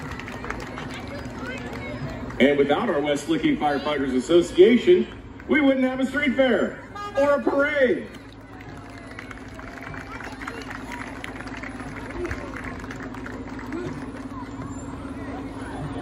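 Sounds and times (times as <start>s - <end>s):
crowd chatter: 0.0s - 16.0s
fire engine running: 0.0s - 16.0s.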